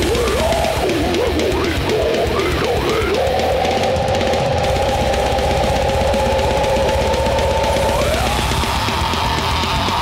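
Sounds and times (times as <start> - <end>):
distorted guitar chord: 0.0 - 10.0
fast dense drumming: 0.0 - 10.0.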